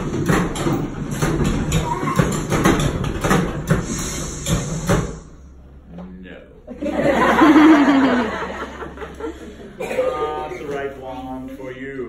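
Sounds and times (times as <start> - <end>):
shelves rattling and clattering: 0.0 - 4.0.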